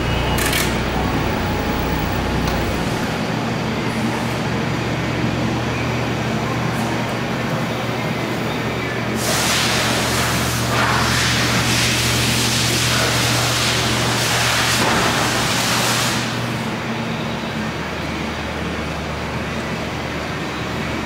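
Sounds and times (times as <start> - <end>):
forklift engine running: 0.0 - 9.2
loud hiss: 9.2 - 16.4.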